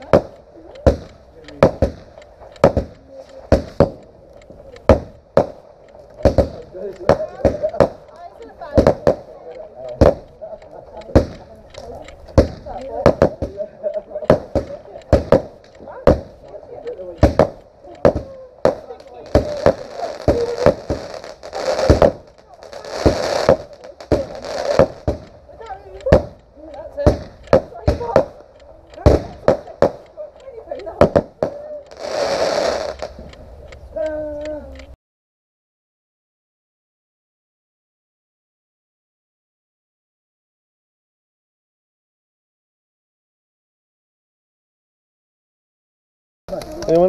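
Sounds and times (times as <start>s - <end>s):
fireworks sharp bangs: 0.0s - 33.4s
fireworks hissing whooshes: 0.0s - 33.9s.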